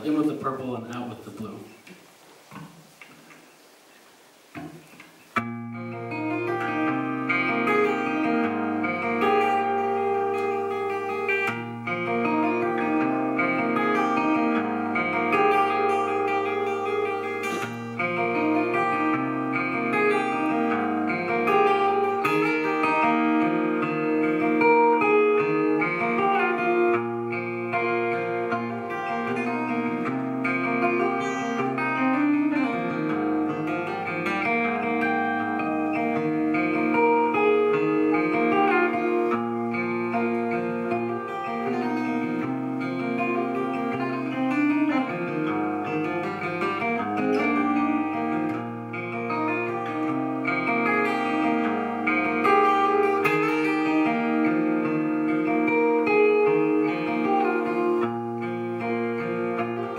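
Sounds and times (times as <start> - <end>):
fingerstyle acoustic guitar: 4.5 - 59.9.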